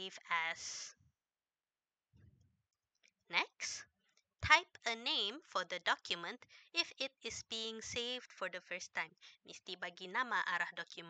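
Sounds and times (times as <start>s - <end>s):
woman's voice: 0.0s - 0.9s, 3.3s - 3.8s, 4.4s - 11.0s.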